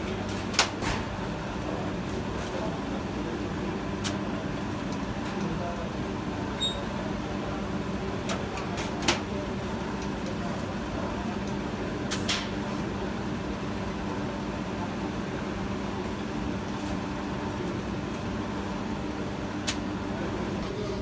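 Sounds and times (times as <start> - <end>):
machinery mechanical hum: 0.0 - 21.0.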